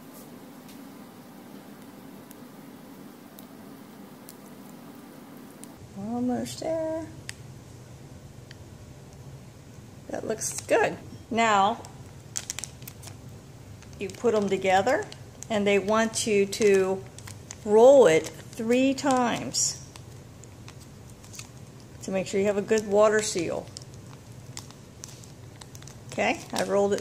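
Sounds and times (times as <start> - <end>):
plastic bag crinkling: 11.4 - 27.0
soft clicks of plastic bag: 11.8 - 13.2, 16.6 - 17.6, 23.6 - 27.0.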